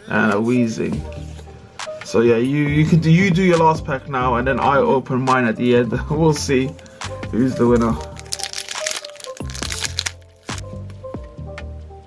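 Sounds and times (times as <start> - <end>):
background music: 0.0 - 12.0
foil wrapper crinkling: 7.7 - 10.7.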